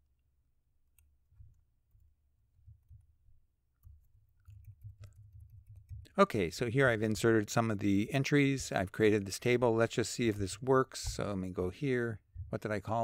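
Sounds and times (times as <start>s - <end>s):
keyboard typing: 3.8s - 6.2s.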